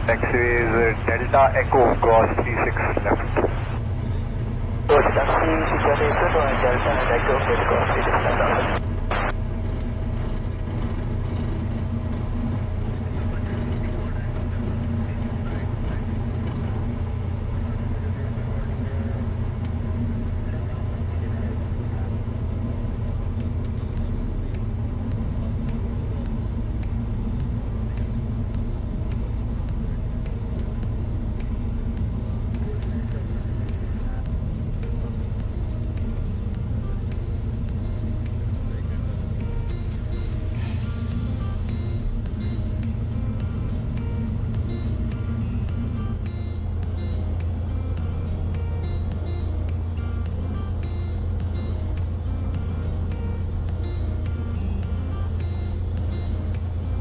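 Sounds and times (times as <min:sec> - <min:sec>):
piston aircraft engine drone: 0:00.0 - 0:57.0.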